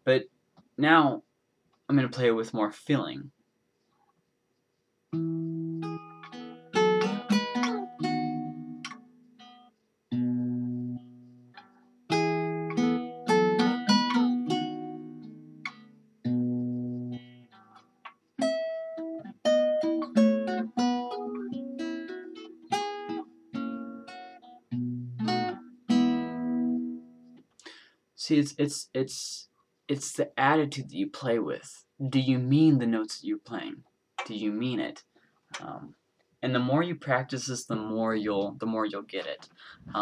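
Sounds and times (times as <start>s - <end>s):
acoustic guitar plucked melody: 5.1s - 27.4s.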